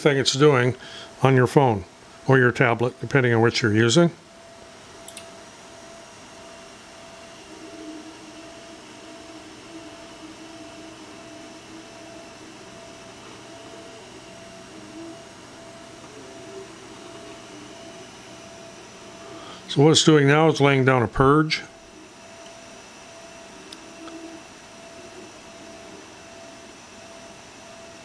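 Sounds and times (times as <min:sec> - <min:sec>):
three-d printer steady hum: 0:00.0 - 0:28.0
stepper motor whine: 0:05.5 - 0:28.0.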